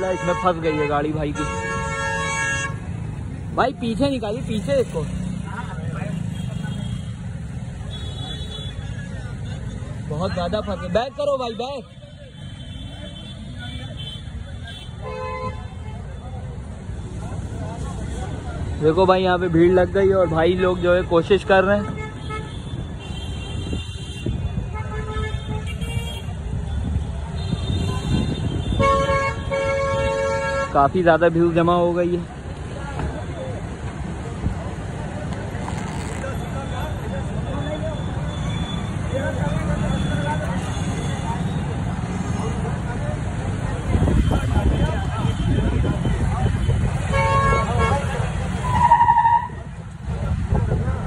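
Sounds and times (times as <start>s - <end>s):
vehicle horns honking: 0.0s - 2.9s, 21.8s - 30.8s, 44.0s - 49.7s
low traffic rumble: 0.0s - 51.0s.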